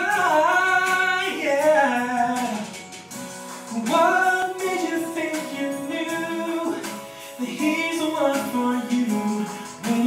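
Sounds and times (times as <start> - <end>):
person singing: 0.0 - 3.0, 3.6 - 10.0.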